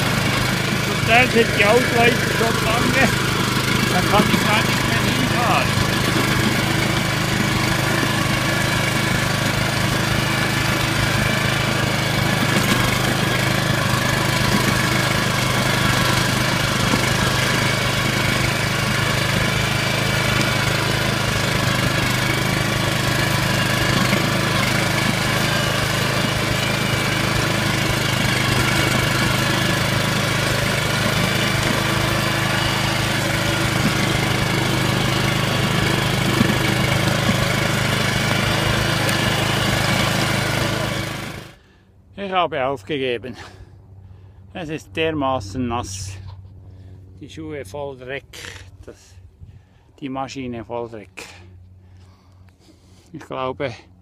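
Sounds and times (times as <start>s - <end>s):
motor hoe engine running: 0.0s - 41.9s.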